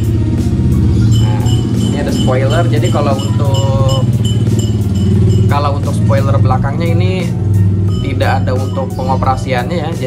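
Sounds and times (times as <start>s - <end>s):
music playing: 0.0s - 10.0s
vehicle engine passing: 0.0s - 10.0s.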